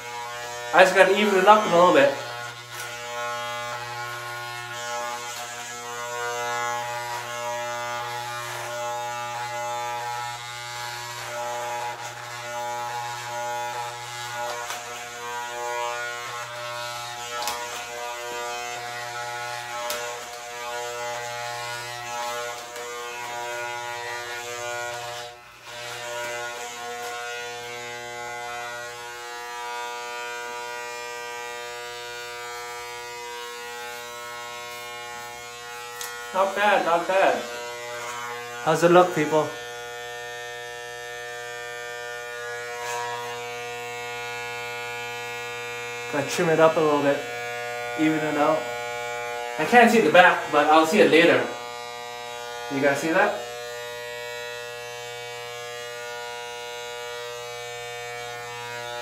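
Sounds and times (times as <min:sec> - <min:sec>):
electric hair clippers buzzing: 0:00.0 - 0:59.0.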